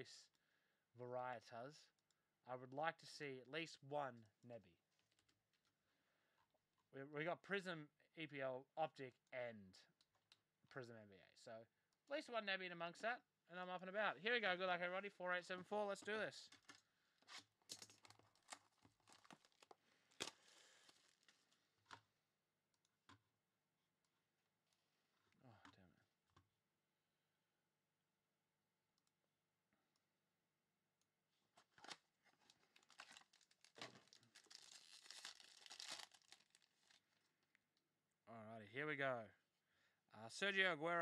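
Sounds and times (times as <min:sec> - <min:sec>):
pack wrapper crinkling: 0:16.5 - 0:21.5, 0:31.6 - 0:37.2.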